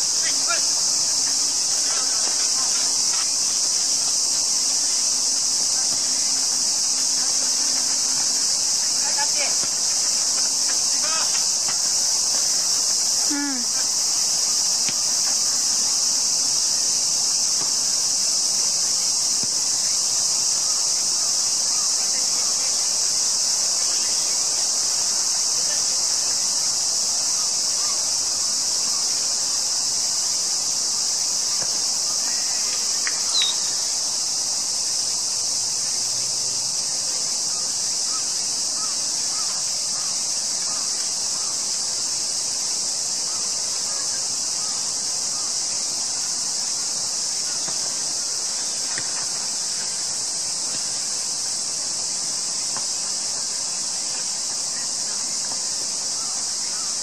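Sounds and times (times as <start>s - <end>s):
insect chorus drone: 0.0s - 57.0s
distant shouts: 0.2s - 3.3s, 8.8s - 11.8s.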